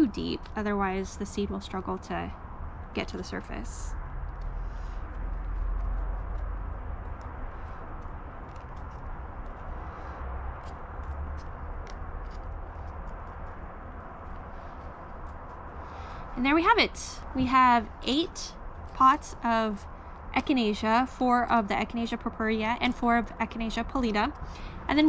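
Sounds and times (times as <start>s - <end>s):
wind rumble on microphone: 0.0s - 25.0s.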